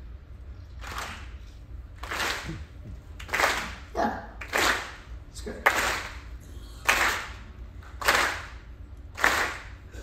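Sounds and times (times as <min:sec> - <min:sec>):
audience slow clapping in unison: 0:00.8 - 0:10.0.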